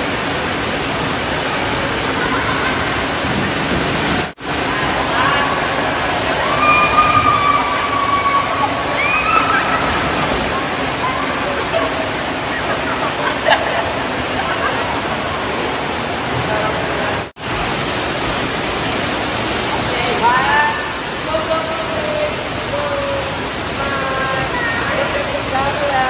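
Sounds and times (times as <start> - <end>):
splashing: 0.0 - 26.0
water pouring into pools: 0.0 - 26.0
voices and shouts: 4.6 - 13.5.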